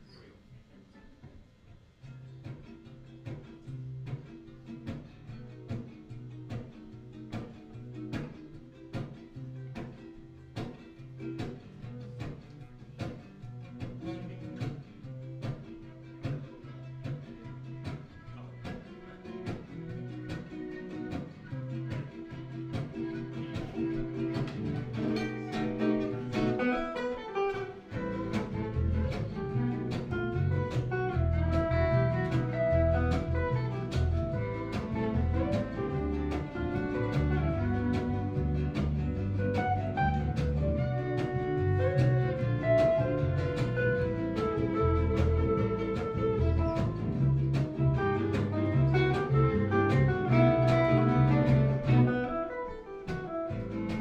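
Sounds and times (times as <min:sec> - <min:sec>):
acoustic guitars strumming: 0:02.0 - 0:54.0
deep upright bass notes: 0:19.4 - 0:26.7, 0:27.8 - 0:52.4, 0:53.4 - 0:54.0
violin melody: 0:21.6 - 0:54.0.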